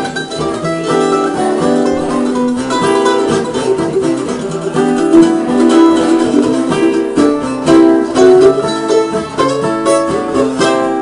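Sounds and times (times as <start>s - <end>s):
mandolin picked notes: 0.0s - 11.0s.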